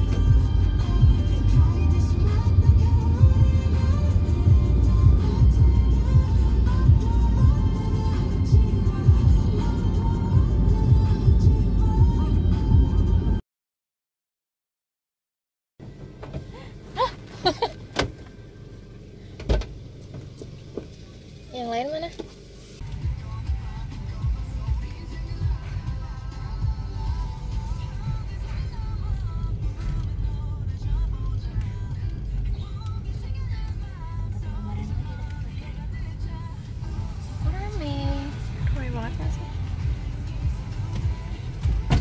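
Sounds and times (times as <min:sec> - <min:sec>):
car engine running: 0:00.0 - 0:13.4, 0:15.8 - 0:42.0
clicks and knock inside car: 0:41.0 - 0:42.0.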